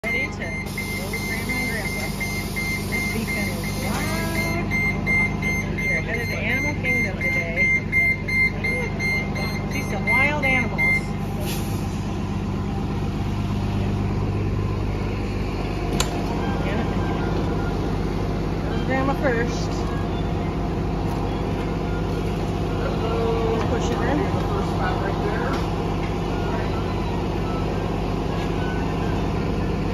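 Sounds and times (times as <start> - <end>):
repeating warning beep: 0.0 - 11.3, 26.2 - 29.8
bus engine idling: 0.0 - 29.9.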